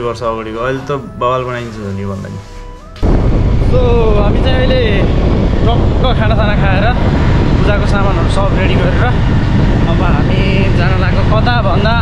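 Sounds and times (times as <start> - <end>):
man talking: 0.0 - 2.5, 9.9 - 12.0
wind buffeting microphone: 2.9 - 12.0.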